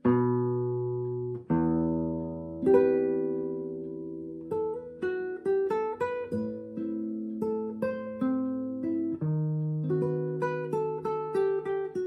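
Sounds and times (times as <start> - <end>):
classical guitar chords: 0.0 - 12.0.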